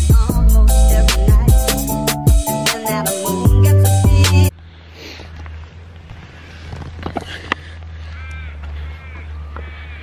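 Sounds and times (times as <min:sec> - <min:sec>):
wind and road rumble: 0:04.5 - 0:10.0
caw-like bird calls: 0:07.9 - 0:10.0.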